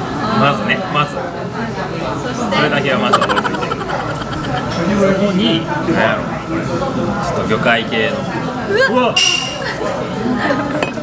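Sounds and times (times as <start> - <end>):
people laughing: 3.0 - 5.6
people crying out: 3.1 - 5.0.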